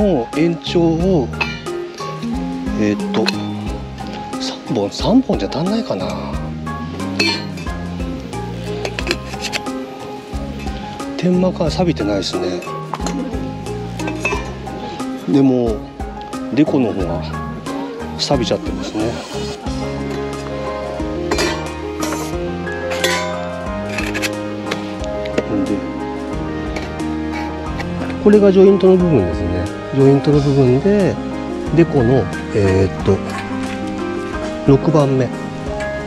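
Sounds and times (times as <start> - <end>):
background music: 0.0 - 36.0
metal pipes clinking: 7.1 - 7.8, 14.0 - 14.6, 21.3 - 25.5.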